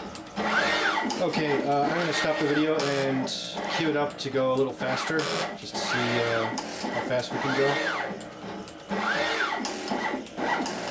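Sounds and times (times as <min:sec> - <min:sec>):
motor whine rising and falling: 0:00.0 - 0:04.1, 0:04.8 - 0:10.9
sharp mechanical clicks: 0:00.0 - 0:10.9.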